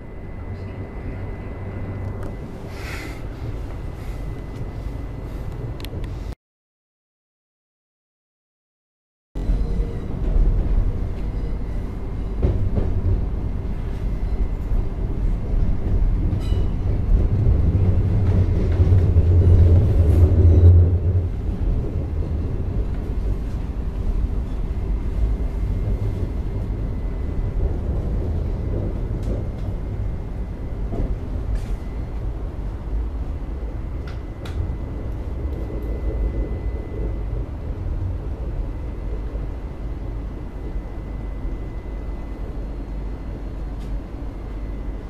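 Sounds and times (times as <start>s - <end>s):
train interior low rumble: 0.0s - 6.4s, 9.4s - 45.0s.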